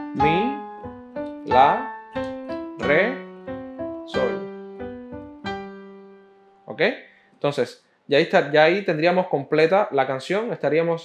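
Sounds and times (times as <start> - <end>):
digital piano chord stabs: 0.0 - 6.8.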